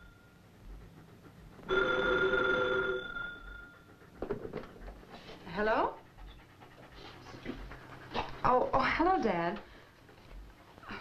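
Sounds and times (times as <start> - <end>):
dog panting: 0.0 - 2.5, 3.2 - 11.0.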